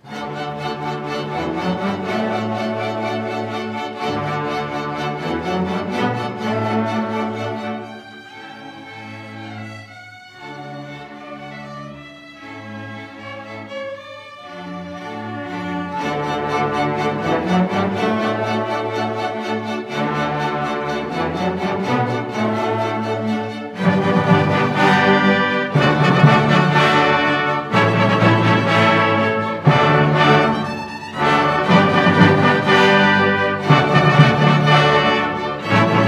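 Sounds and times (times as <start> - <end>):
orchestra playing bowed strings: 0.0 - 36.0.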